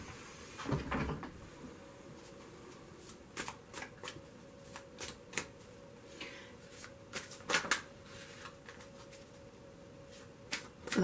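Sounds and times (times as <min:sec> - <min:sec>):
cards being shuffled: 0:03.0 - 0:05.6, 0:06.7 - 0:09.4, 0:10.1 - 0:11.0.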